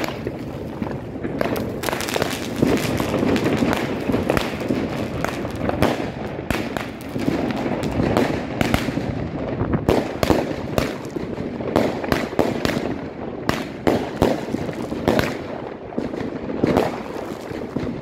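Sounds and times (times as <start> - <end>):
fireworks and firecrackers banging: 0.0 - 18.0.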